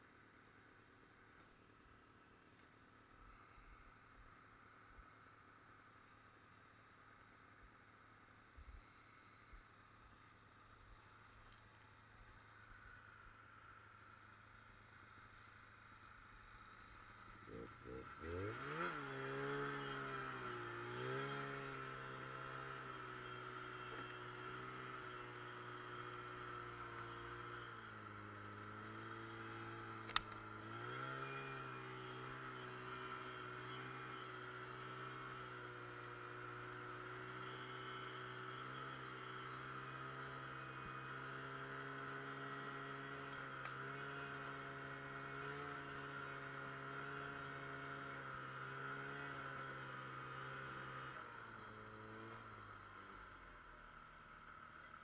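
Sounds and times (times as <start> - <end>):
snowmobile engine running: 15.1 - 53.4
sharp click: 30.0 - 30.4.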